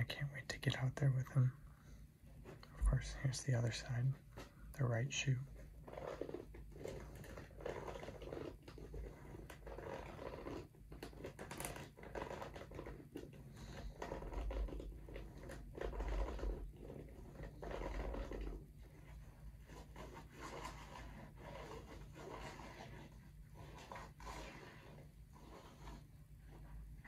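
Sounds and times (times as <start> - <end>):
fingernails scratching rubber sole: 5.5 - 27.0.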